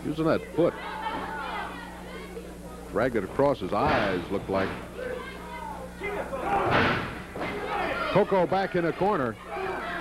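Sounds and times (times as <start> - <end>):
crowd shouting: 0.7 - 2.3, 5.0 - 10.0.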